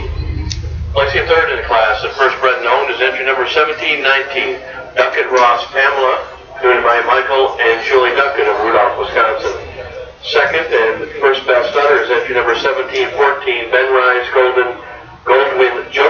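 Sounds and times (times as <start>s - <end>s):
man talking: 0.9s - 16.0s.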